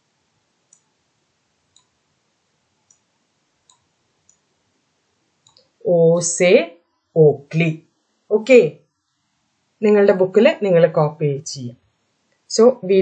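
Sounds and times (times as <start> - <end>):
faint sharp clicks: 0.7 - 0.9, 1.7 - 2.0, 2.8 - 4.4, 5.4 - 5.7
person speaking: 5.9 - 8.8, 9.8 - 11.8, 12.5 - 13.0.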